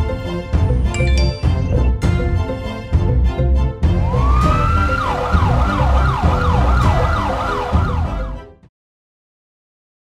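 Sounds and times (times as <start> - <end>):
siren whooping: 4.1 - 8.4.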